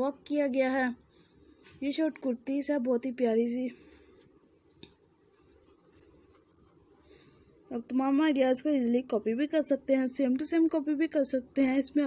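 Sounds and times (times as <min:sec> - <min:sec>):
woman speaking: 0:01.8 - 0:03.8, 0:07.7 - 0:12.0
soft rustling: 0:03.6 - 0:07.8.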